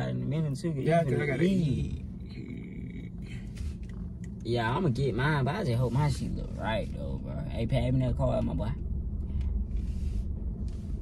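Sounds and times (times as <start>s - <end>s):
car idling inside cabin: 0.0s - 11.0s.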